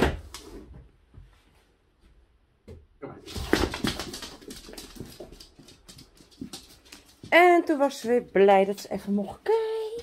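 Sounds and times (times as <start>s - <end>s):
dog claws clicking on hard floor: 3.2s - 7.4s.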